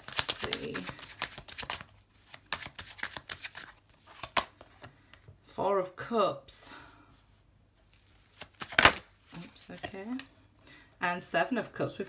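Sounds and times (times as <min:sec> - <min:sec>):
cards riffling and slapping: 0:00.0 - 0:05.0, 0:08.1 - 0:09.1.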